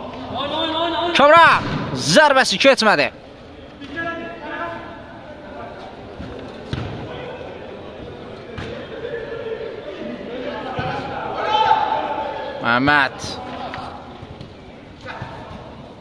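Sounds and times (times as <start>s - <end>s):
football kicks echoing: 6.2s - 7.4s.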